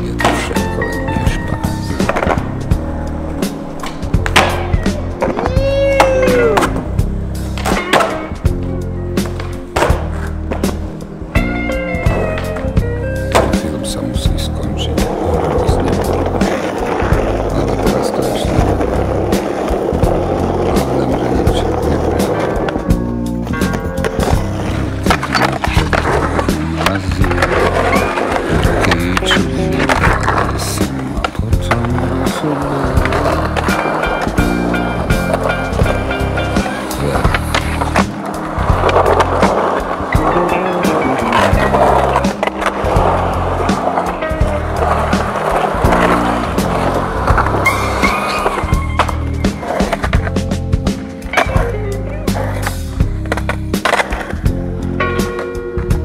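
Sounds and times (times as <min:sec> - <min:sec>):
skateboard clacking: 0:00.0 - 0:13.8, 0:14.8 - 0:56.0
music with steady beat: 0:00.0 - 0:20.8, 0:21.7 - 0:56.0
skateboard wheels rolling on concrete: 0:00.0 - 0:56.0.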